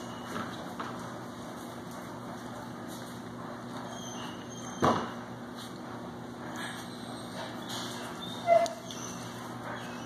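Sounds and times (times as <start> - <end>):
steady low hum: 0.0 - 10.0
puppy yip: 8.2 - 10.0.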